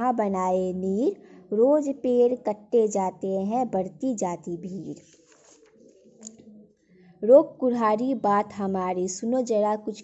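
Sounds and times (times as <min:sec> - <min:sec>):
paper page turning: 0:04.9 - 0:06.3.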